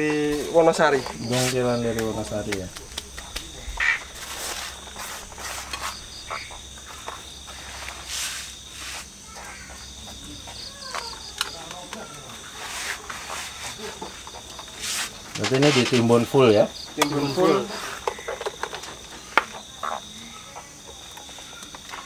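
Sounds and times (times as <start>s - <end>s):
crickets chirping: 0.0s - 22.0s
hands pressing soil into pot: 0.4s - 16.1s.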